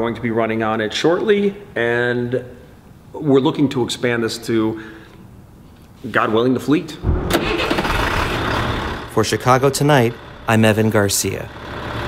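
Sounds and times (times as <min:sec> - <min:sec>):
diesel truck engine starting and idling: 0:07.0 - 0:12.0.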